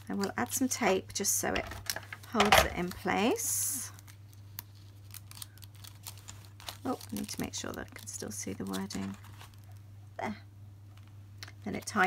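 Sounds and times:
low steady hum: 0.0 - 12.0
paper crinkling: 1.8 - 9.9.

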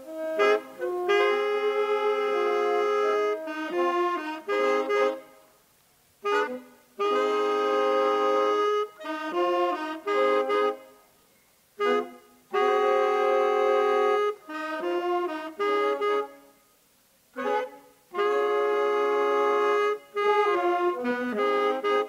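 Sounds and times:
saxophone quartet playing: 0.0 - 5.4, 6.2 - 11.0, 11.8 - 16.5, 17.4 - 22.0.

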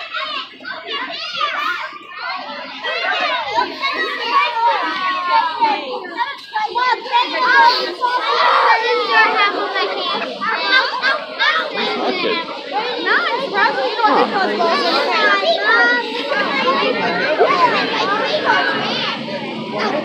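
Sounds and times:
young children chattering: 0.0 - 20.0.

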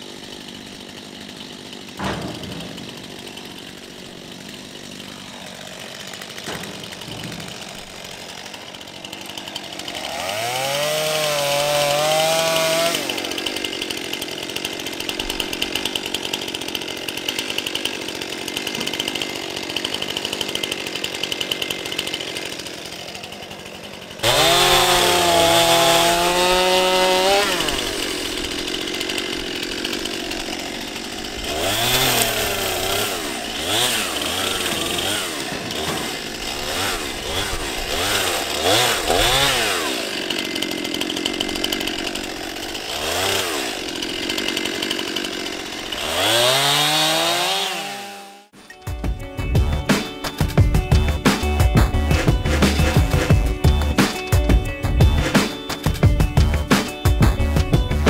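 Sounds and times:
chainsaws revving and cutting: 0.0 - 58.0.

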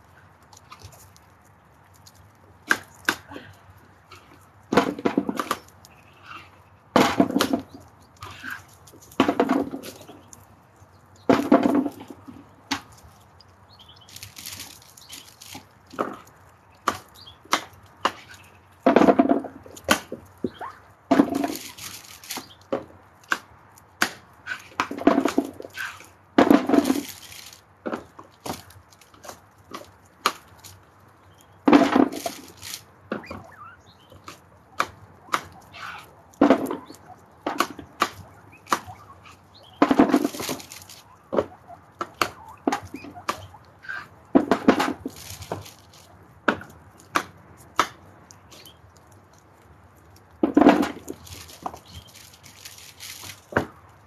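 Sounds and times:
guinea pigs nibbling and crunching: 0.0 - 54.0.

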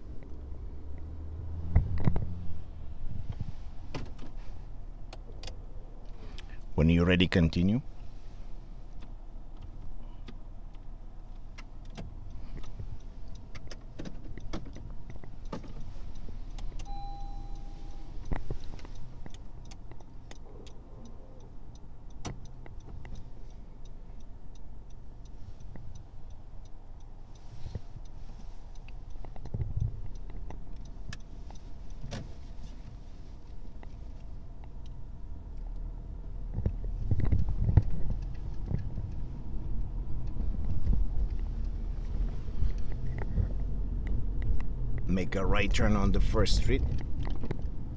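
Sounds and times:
car engine and road rumble: 0.0 - 47.9
short beep: 16.8 - 18.2
small clicks and rattles: 46.8 - 47.8.

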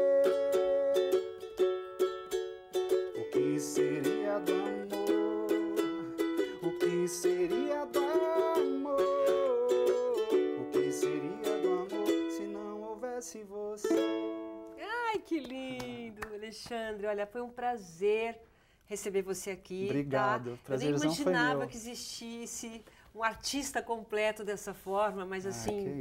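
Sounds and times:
man singing: 0.0 - 1.4, 3.1 - 14.4
ukulele strumming: 0.0 - 13.1, 13.8 - 16.2.

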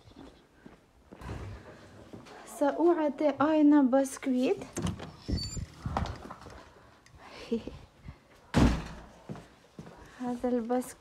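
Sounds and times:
door shutting with a thud: 8.5 - 9.1.

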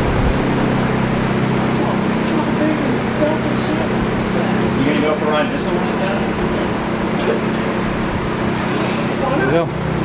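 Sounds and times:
shop machinery humming: 0.0 - 10.0.

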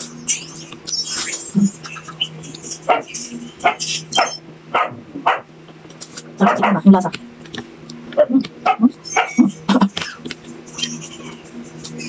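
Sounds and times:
dog barking: 2.9 - 5.5, 6.4 - 6.9, 8.2 - 9.4.

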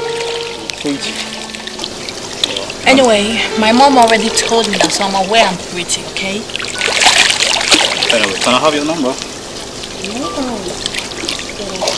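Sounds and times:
faint held music note: 0.0 - 5.2
water pouring into a pool: 6.5 - 11.9.

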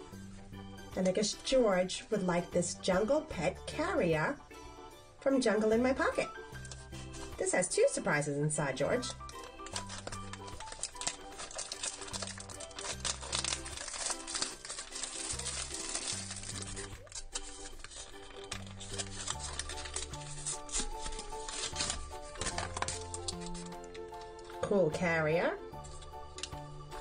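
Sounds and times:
foil wrapper crinkling and tearing: 6.4 - 7.4, 9.0 - 24.7, 25.8 - 27.0.

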